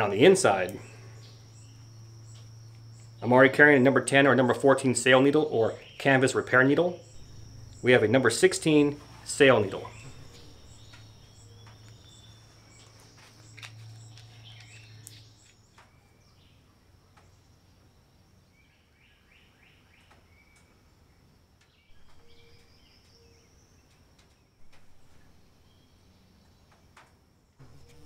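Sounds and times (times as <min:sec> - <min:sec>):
low hum: 0:00.0 - 0:18.4
insect trill: 0:00.0 - 0:18.5, 0:21.8 - 0:23.8
bird chirps: 0:00.0 - 0:20.8, 0:21.7 - 0:26.8, 0:27.6 - 0:28.0.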